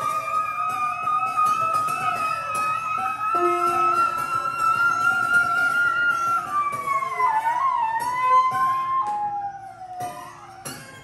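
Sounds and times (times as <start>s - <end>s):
flute gliding in pitch: 0.0s - 9.9s
piano strings plucked by hand: 3.4s - 4.7s.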